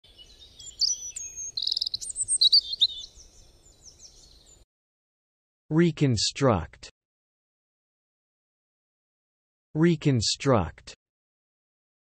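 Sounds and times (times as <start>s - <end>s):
bird chirping and trilling: 0.1s - 4.6s.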